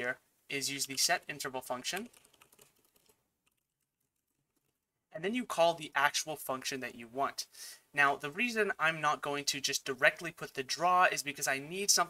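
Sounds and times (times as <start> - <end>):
computer keyboard typing: 1.8 - 4.9.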